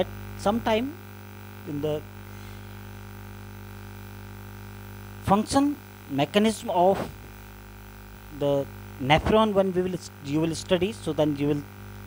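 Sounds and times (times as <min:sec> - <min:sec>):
man speaking: 0:00.0 - 0:01.0, 0:01.7 - 0:02.1, 0:05.2 - 0:07.2, 0:08.4 - 0:11.7
low electrical hum: 0:00.0 - 0:12.0.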